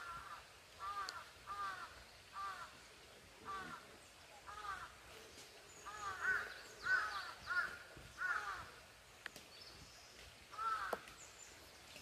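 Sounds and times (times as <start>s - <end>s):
crow cawing: 0.0s - 2.8s, 3.5s - 3.8s, 4.5s - 5.0s, 5.9s - 8.8s, 10.5s - 11.1s.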